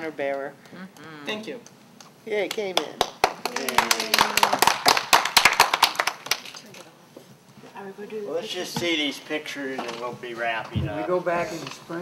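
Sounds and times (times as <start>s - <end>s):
people applauding: 2.4s - 6.9s.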